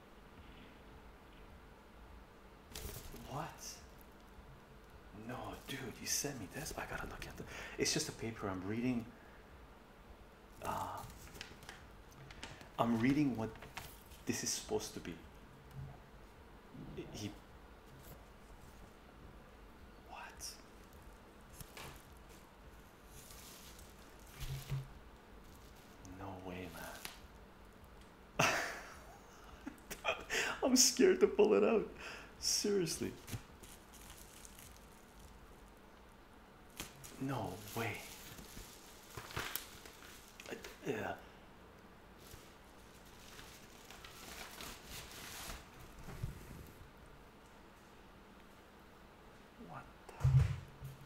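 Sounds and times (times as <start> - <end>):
paper rustling: 10.6 - 14.3, 21.5 - 22.4, 23.0 - 27.2, 36.7 - 40.8, 42.2 - 46.6
person chuckling: 28.4 - 30.6.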